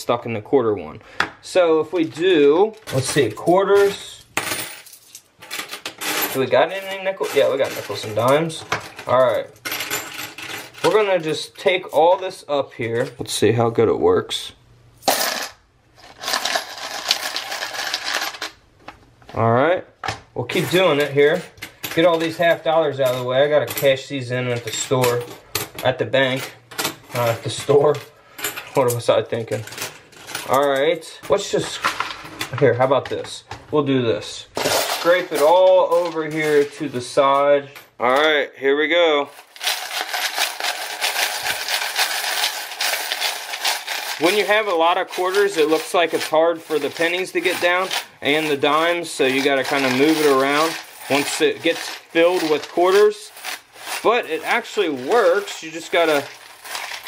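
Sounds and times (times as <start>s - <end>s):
coins rattling in plastic tray: 2.8s - 12.0s, 15.0s - 18.6s, 24.6s - 32.6s, 34.6s - 37.0s, 39.3s - 57.0s.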